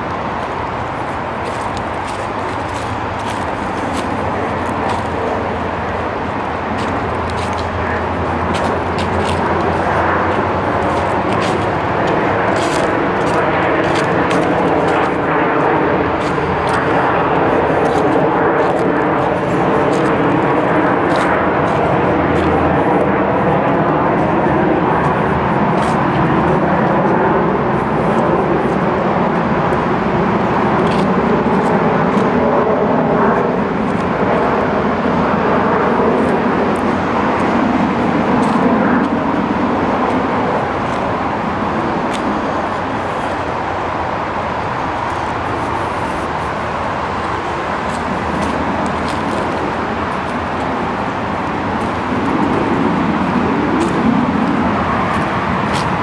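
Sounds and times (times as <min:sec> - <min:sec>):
engine drone: 0:00.0 - 0:56.0
footsteps on leafy dirt trail: 0:00.0 - 0:56.0.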